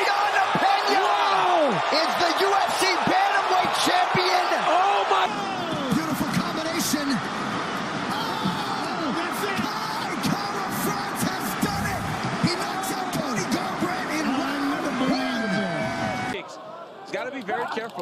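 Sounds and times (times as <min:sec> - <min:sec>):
people yelling and screaming: 0:00.0 - 0:06.2, 0:08.1 - 0:16.8
arena crowd: 0:00.0 - 0:18.0.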